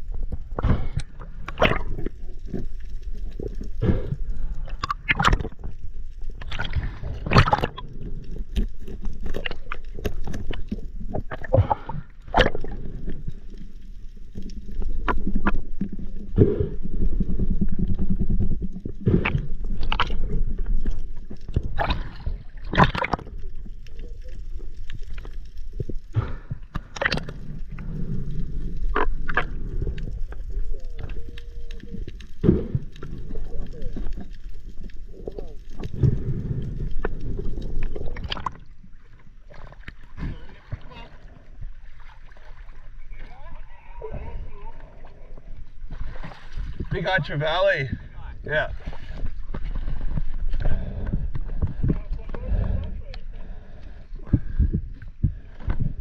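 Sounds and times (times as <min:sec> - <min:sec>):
water sloshing and gurgling: 0:00.0 - 0:56.0.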